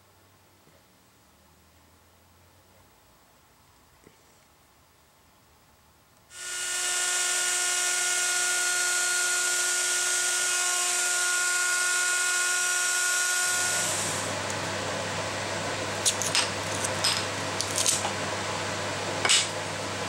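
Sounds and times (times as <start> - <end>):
router whining: 6.3 - 14.6.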